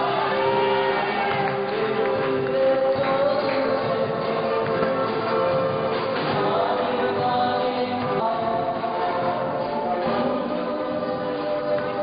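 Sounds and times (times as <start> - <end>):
voices singing together: 0.0 - 12.0.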